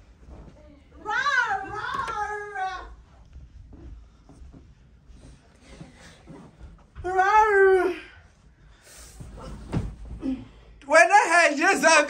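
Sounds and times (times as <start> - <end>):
woman's wordless exclamation: 7.0 - 8.2
soft thud onto a bed: 9.3 - 10.2.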